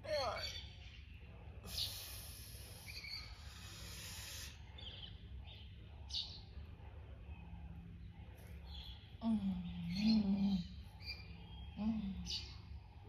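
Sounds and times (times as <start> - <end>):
birds chirping: 0.0 - 13.0
low outdoor rumble: 0.0 - 13.0.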